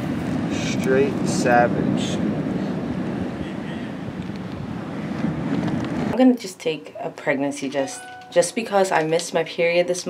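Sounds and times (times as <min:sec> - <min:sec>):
ocean surf: 0:00.0 - 0:06.2
wind noise on microphone: 0:00.0 - 0:06.2.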